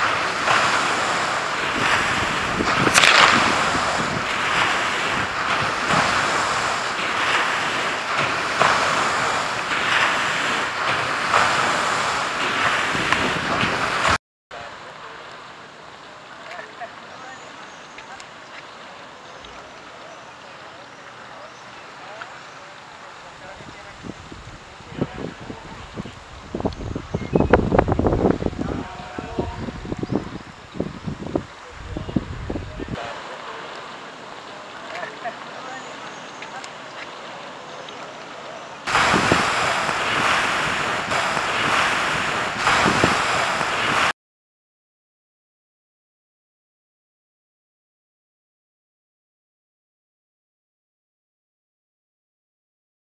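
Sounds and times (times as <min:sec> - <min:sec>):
faint swimming splashes: 0:00.0 - 0:44.1
rushing surf or churning water: 0:00.0 - 0:44.2
distant indistinct voices: 0:14.6 - 0:27.5, 0:28.4 - 0:30.8, 0:31.4 - 0:43.8.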